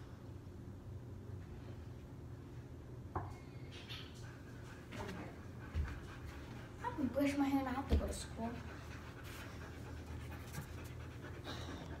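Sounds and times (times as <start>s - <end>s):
steady low hum: 0.0s - 12.0s
dog panting: 4.0s - 12.0s.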